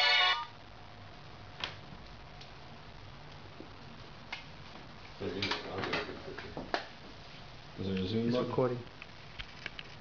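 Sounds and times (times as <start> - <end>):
phone ringtone: 0.0 - 0.6.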